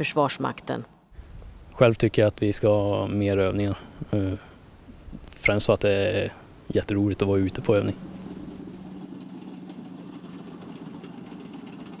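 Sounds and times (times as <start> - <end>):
tank engine low hum: 4.0 - 12.0.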